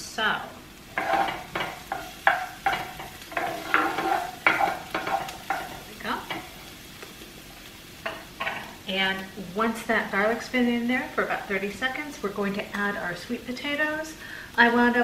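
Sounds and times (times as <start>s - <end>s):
food sizzling in a pan: 0.0s - 15.0s
wooden spoon scraping skillet: 0.9s - 8.9s.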